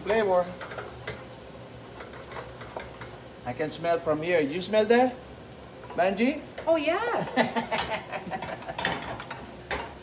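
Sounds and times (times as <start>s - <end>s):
garlic sizzling in oil: 0.0s - 10.0s.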